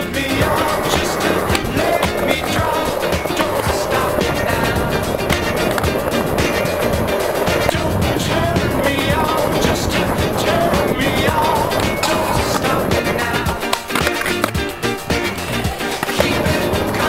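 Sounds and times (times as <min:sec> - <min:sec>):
music: 0:00.0 - 0:17.0
skateboard clacks: 0:00.0 - 0:17.0
skateboard wheels rolling: 0:00.0 - 0:17.0.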